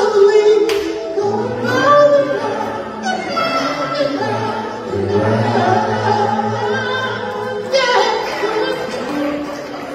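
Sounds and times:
vocal group singing harmony: 0:00.0 - 0:09.9.

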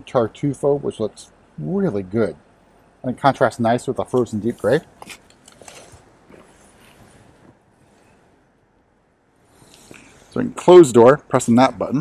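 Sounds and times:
faint rustling and handling: 0:04.0 - 0:08.5.

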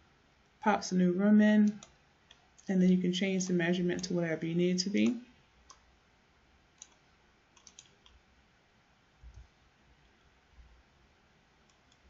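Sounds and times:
faint computer clicks: 0:01.6 - 0:02.7, 0:07.6 - 0:08.2.

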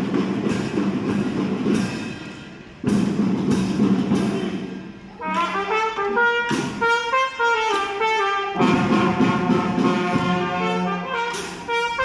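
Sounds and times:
snare and bass drums playing: 0:00.0 - 0:12.0.

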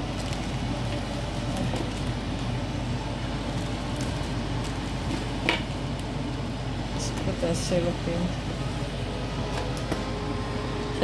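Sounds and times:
fan hum and hiss: 0:00.0 - 0:11.0.

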